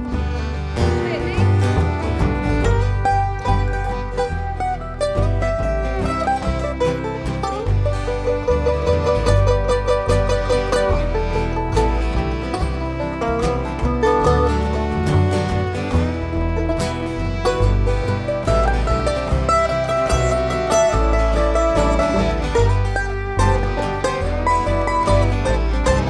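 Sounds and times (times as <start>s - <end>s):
live country band playing: 0.0s - 26.0s.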